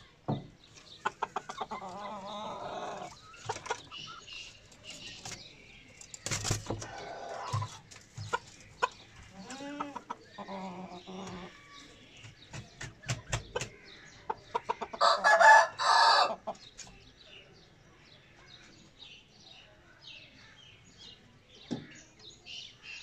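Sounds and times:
chickens clucking: 0.6s - 17.2s.

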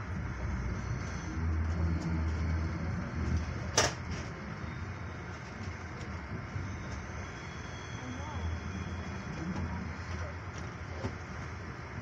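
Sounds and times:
train rumble inside coach: 0.0s - 12.0s.

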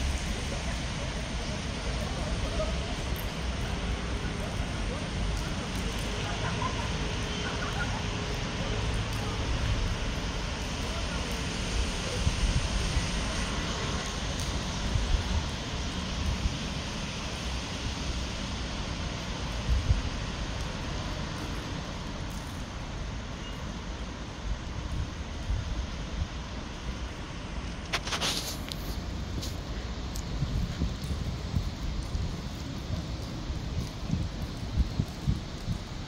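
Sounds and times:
distant road traffic hiss: 0.0s - 36.0s
wind buffeting microphone: 27.8s - 36.0s.

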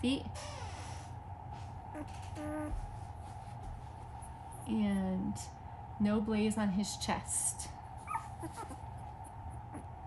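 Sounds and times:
faint steady hum: 0.0s - 10.0s
puppy whimpering: 1.9s - 2.9s, 8.0s - 8.9s.

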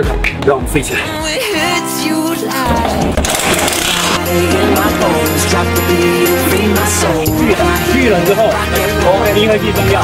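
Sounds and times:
background music with bass line: 0.0s - 10.0s
hissing rattling noise: 3.2s - 5.5s.

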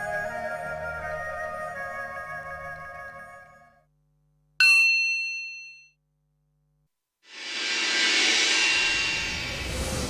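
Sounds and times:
bright metallic ding: 4.6s - 6.0s.

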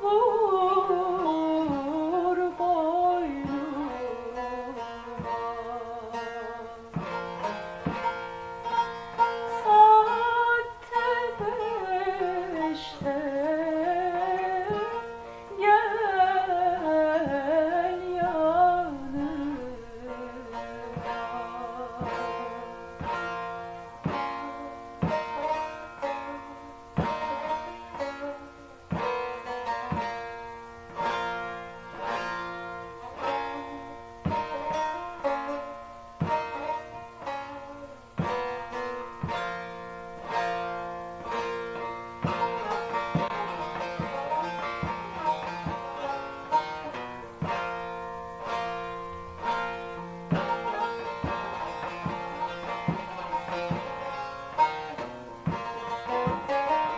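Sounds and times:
plucked long-necked lute: 0.0s - 56.9s
woman singing folk melody: 0.0s - 56.9s.

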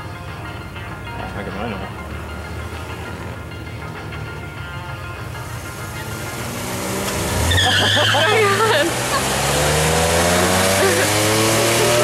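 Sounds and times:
engine revving up: 5.4s - 12.0s.

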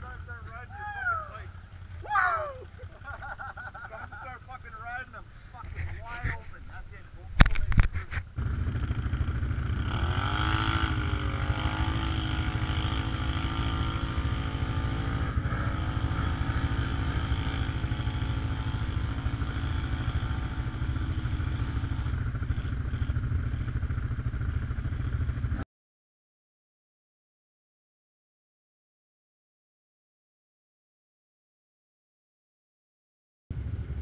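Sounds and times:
atv engine revving: 0.0s - 6.2s, 7.5s - 25.6s, 33.5s - 34.0s.

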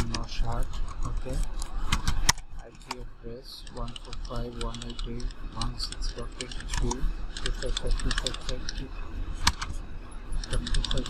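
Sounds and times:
computer keyboard key clicks: 10.4s - 11.0s.

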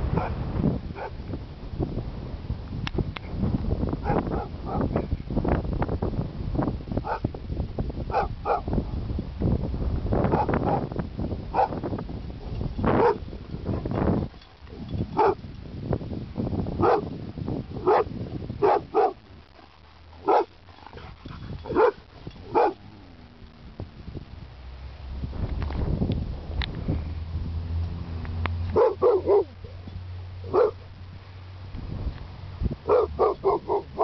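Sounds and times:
dog barking: 1.0s - 1.2s, 4.0s - 4.9s, 7.0s - 7.2s, 8.1s - 8.7s, 10.3s - 10.9s, 11.6s - 11.8s, 13.0s - 13.9s, 15.2s - 15.4s, 16.8s - 17.1s, 17.8s - 19.2s, 20.2s - 22.8s, 28.7s - 29.6s, 30.5s - 30.8s, 32.9s - 34.0s.

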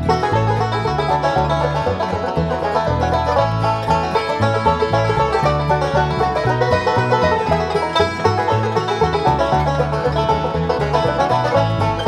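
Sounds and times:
banjos picking rapid notes: 0.0s - 12.0s
fiddle: 0.0s - 12.0s
guitar: 0.0s - 12.0s
upright bass line: 0.0s - 12.0s.

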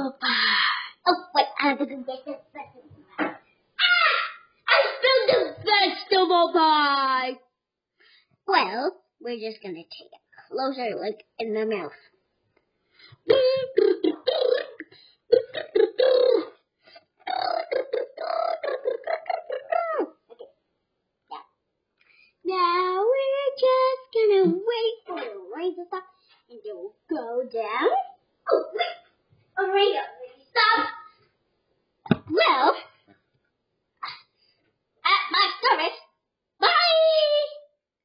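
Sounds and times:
high-pitched dog-like yelps: 3.8s - 5.1s
child making silly vocal noises: 3.8s - 5.8s, 13.2s - 16.6s, 17.2s - 20.6s, 28.5s - 29.1s.

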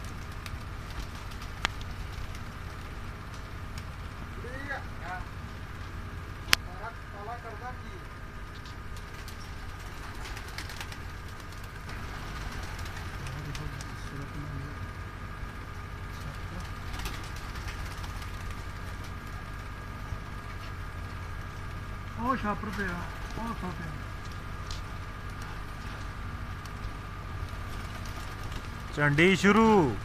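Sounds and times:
low background hum: 0.0s - 30.0s
pigeons cooing: 8.9s - 14.9s.

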